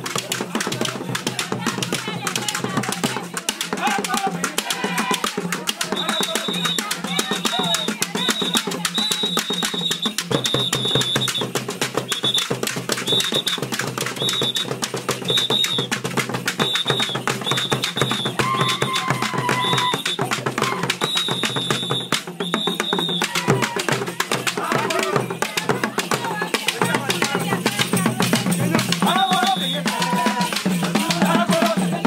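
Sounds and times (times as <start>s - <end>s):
voices: 0.0s - 11.4s, 17.0s - 32.0s
drums and calabashes beat: 0.0s - 32.0s.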